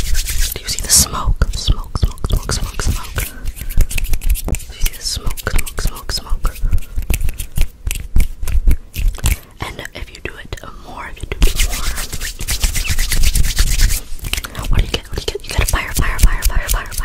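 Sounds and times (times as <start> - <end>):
rapid rubbing of hands: 0.0 - 1.0, 2.2 - 9.5, 11.3 - 17.0
person whispering: 0.6 - 3.6, 4.7 - 6.9, 9.5 - 12.2, 14.4 - 17.0.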